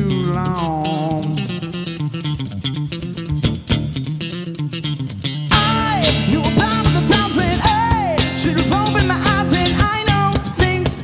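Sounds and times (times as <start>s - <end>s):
man singing: 0.0s - 2.0s, 5.5s - 11.0s
acoustic guitar strumming: 0.0s - 11.0s.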